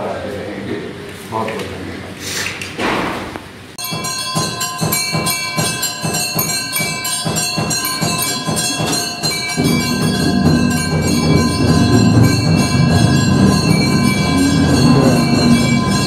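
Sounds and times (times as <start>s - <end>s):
drum strokes: 3.8s - 16.0s
temple bells ringing: 3.8s - 16.0s.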